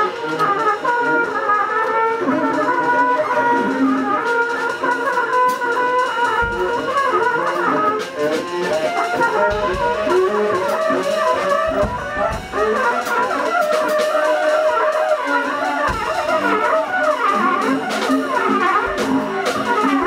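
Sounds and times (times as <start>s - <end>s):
drums and cymbal hits: 0.0s - 20.0s
trumpet wavering lines: 0.0s - 20.0s
low thumps: 9.2s - 13.3s.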